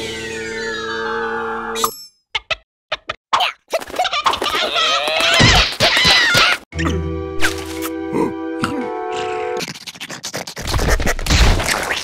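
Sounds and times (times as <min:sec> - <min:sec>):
cartoon scratchy clicking and scraping: 0:02.4 - 0:06.6, 0:09.6 - 0:12.0.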